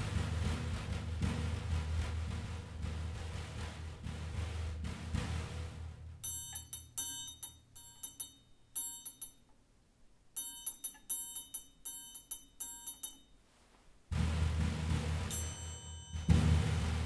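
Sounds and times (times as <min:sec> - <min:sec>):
triangle struck rapidly: 0:00.0 - 0:09.3, 0:14.1 - 0:17.0.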